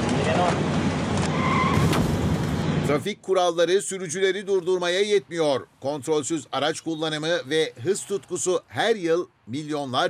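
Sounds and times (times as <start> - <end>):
road traffic noise: 0.0 - 10.0
car tyres squealing: 1.2 - 2.1.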